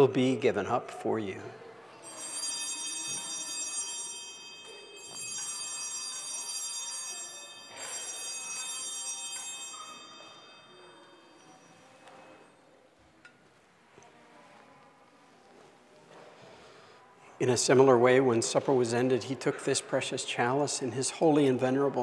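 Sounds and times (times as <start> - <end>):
altar bells ringing: 2.0 - 12.5.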